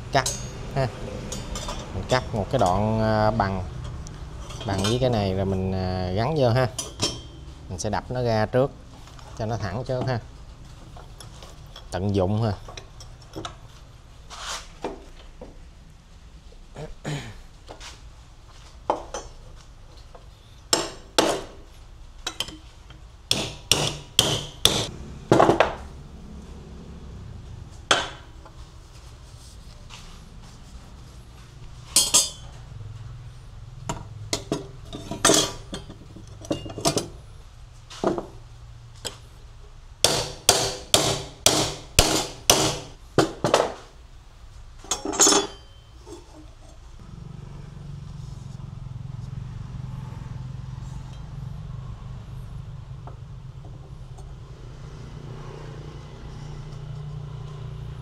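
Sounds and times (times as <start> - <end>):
hammer striking steel strip: 23.3 - 24.9, 40.1 - 43.0.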